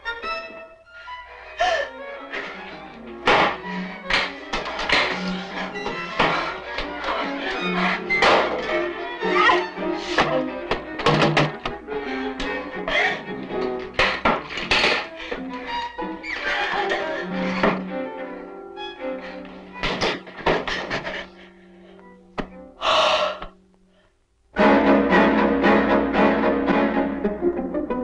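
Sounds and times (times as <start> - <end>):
loud string music: 0.0 - 20.9, 24.6 - 28.0
sharp knocks and thuds: 3.2 - 5.2, 10.2 - 11.8.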